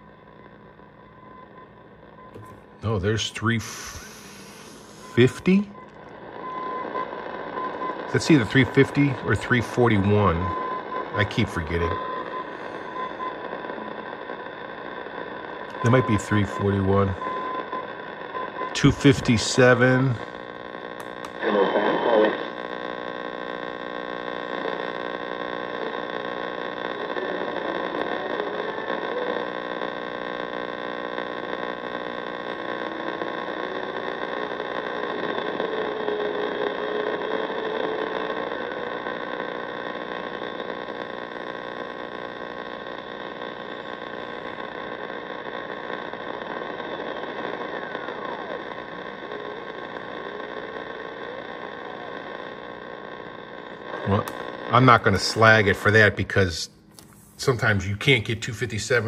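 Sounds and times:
radio static and buzzing: 0:00.0 - 0:59.0.

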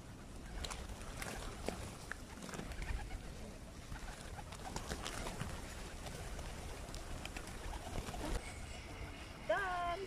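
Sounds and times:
pigeon wings flapping: 0:00.0 - 0:08.4
pigeons cooing: 0:00.0 - 0:09.2.

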